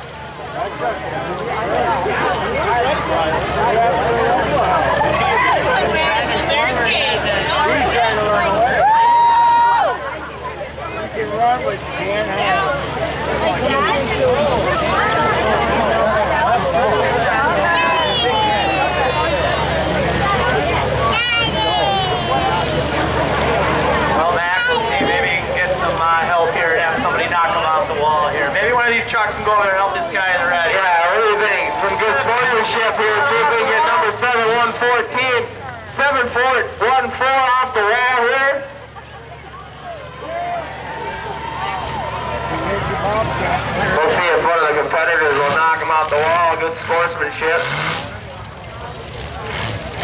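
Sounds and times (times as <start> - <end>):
people talking: 0.0 - 8.8, 9.9 - 50.0
crowd noise: 0.0 - 50.0
truck engines running: 0.0 - 50.0.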